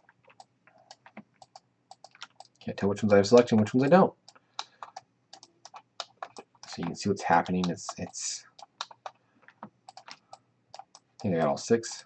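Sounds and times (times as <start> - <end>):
keyboard and mouse clicking: 0.0 - 11.6.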